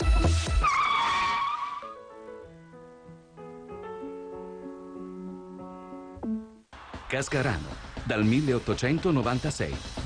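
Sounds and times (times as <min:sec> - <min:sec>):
tyre screech effect: 0:00.5 - 0:02.0
soft piano notes: 0:02.0 - 0:06.6
electronic dance beat: 0:06.8 - 0:10.0.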